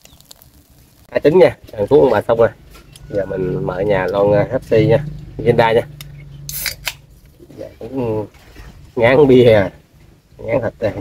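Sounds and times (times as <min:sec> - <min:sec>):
can opening crack and hiss: 0:00.0 - 0:01.1, 0:06.5 - 0:07.0.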